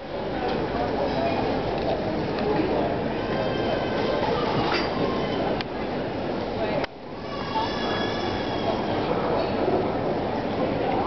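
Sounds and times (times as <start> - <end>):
busy airport terminal noise: 0.0 - 11.0.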